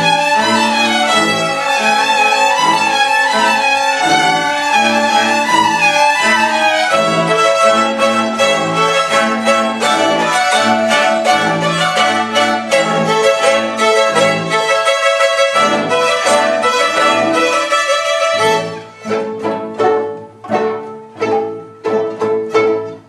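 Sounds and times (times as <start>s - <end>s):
string orchestra playing brisk piece: 0.0s - 23.0s.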